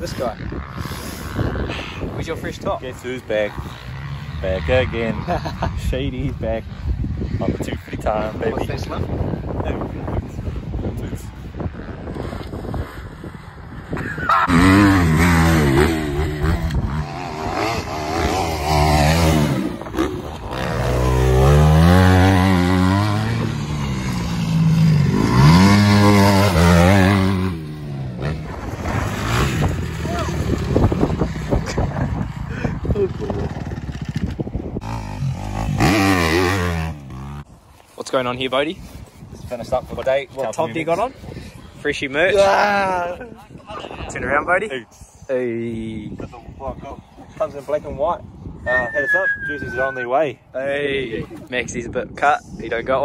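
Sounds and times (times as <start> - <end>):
dirt bike engine revving: 2.6 - 5.9, 11.7 - 37.5.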